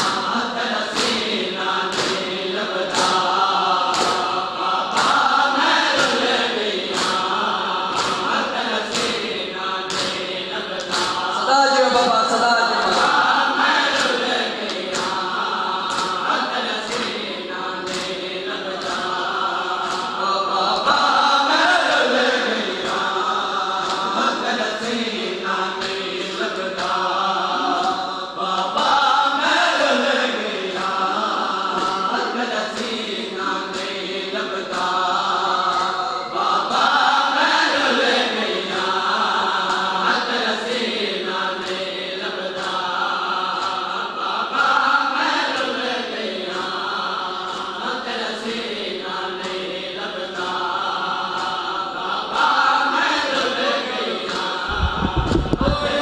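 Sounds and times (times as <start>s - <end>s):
men chanting together: 0.0s - 56.0s.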